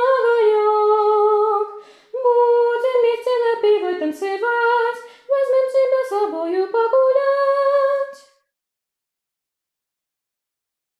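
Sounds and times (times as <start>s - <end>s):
short breath: 1.8s - 2.2s, 5.0s - 5.3s.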